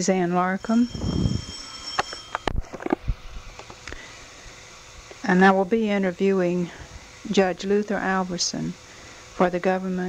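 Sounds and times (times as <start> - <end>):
faint high whine: 0.0 - 10.0.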